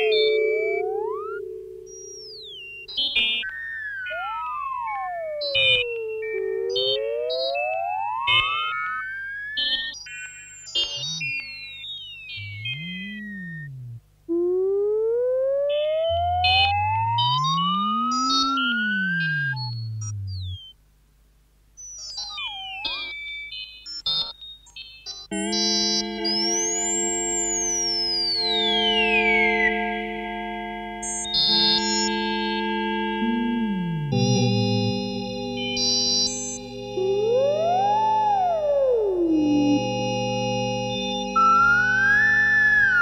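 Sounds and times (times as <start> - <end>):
electronic tone glides: 0.0 - 9.9, 10.8 - 20.8, 31.0 - 43.0
low steady hum: 12.4 - 21.6, 32.8 - 35.8.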